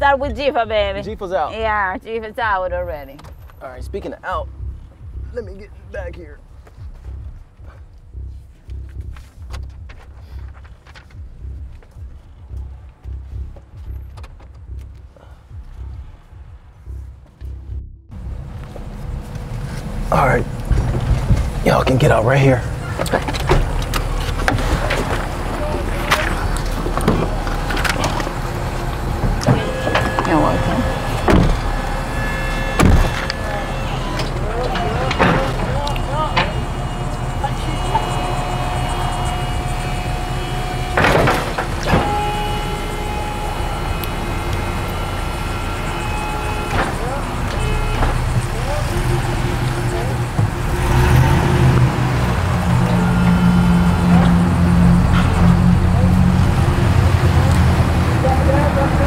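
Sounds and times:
low engine drone: 0.0 - 59.0
tow truck engine running: 0.0 - 59.0
door and handling clunks: 22.9 - 43.1, 45.8 - 48.6.

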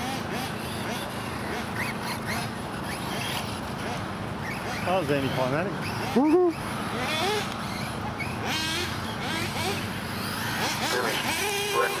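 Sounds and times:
rc car motor whine: 0.0 - 12.0.

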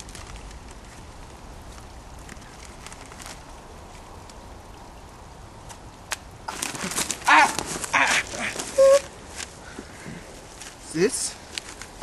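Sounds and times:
crunching of dry twigs and leaves: 0.0 - 4.6, 5.6 - 12.0
person yelling: 7.2 - 9.1.

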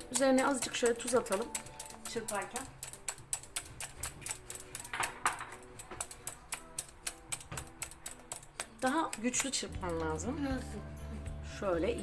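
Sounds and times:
whisk clicking against glass bowl: 0.0 - 10.3.

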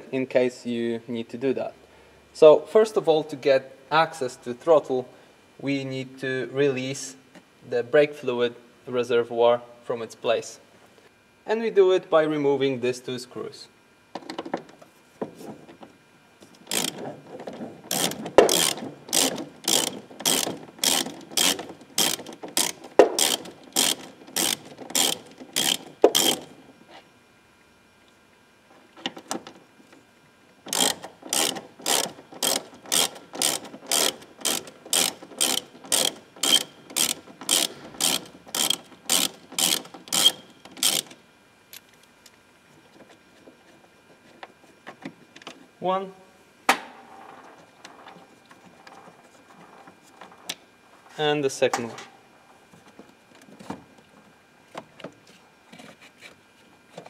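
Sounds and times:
hand ratchet clicking: 16.7 - 17.0, 17.9 - 26.5, 30.7 - 41.2.

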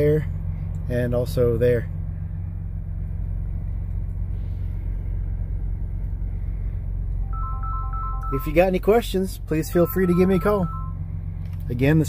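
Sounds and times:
truck engine idling: 0.0 - 12.0
electronic chime tones: 7.2 - 8.7, 9.6 - 11.0.

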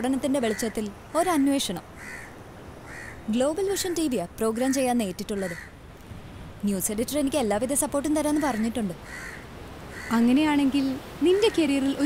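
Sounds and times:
woman speaking: 0.0 - 1.9, 3.3 - 5.6, 6.6 - 9.0, 10.1 - 12.0.

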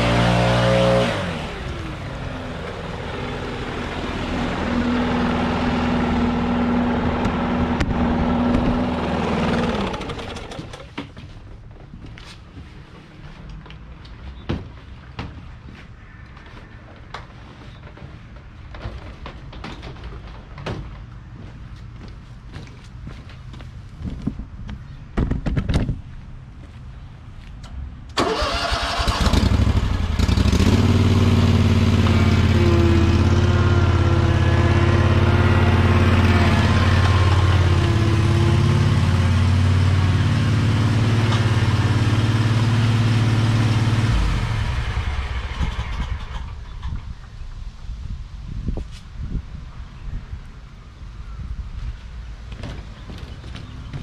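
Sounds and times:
mower engine running: 0.0 - 11.0, 28.2 - 46.9.

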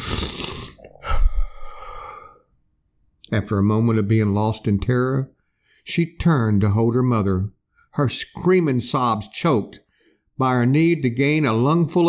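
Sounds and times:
person gasping and sobbing: 0.0 - 2.4.

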